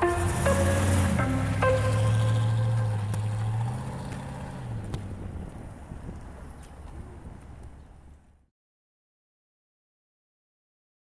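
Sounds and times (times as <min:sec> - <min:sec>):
car engine running: 0:00.0 - 0:06.6.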